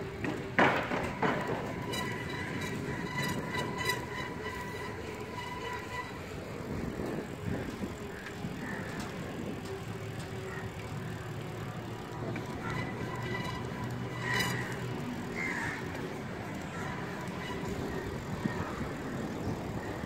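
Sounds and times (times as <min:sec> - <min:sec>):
bicycle tyres rumbling on asphalt: 0:00.0 - 0:20.0.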